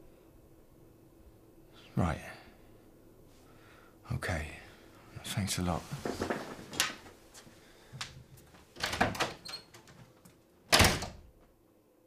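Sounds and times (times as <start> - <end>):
door shutting: 8.8 - 10.0, 10.7 - 11.3.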